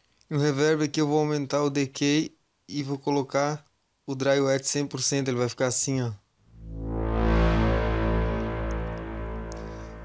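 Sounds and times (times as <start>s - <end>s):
reverb wash of synthesizer tones: 6.5s - 10.0s.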